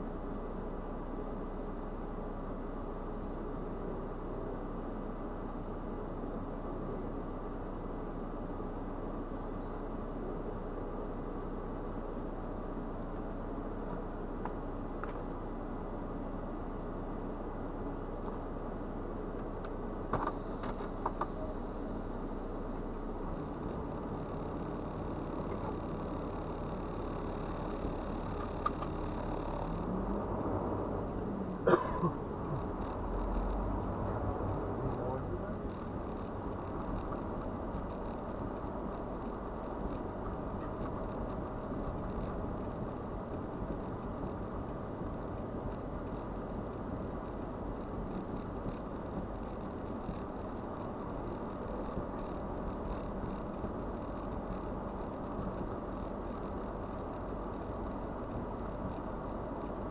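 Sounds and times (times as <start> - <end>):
diesel truck engine idling: 0.0 - 59.9.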